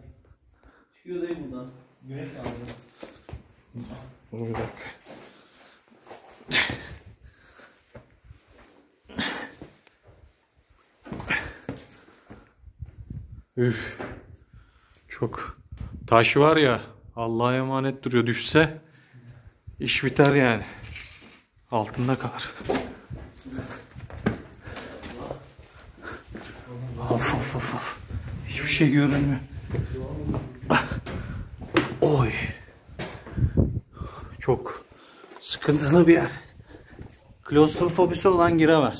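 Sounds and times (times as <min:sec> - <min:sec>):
person sighing and breathing heavily: 0:09.0 - 0:09.8, 0:11.1 - 0:12.1, 0:29.9 - 0:31.6, 0:32.5 - 0:35.4
heavy exhalations: 0:09.0 - 0:09.9, 0:11.0 - 0:12.5, 0:23.0 - 0:28.4, 0:29.6 - 0:31.6, 0:32.5 - 0:35.4
person huffing and groaning: 0:30.6 - 0:31.3.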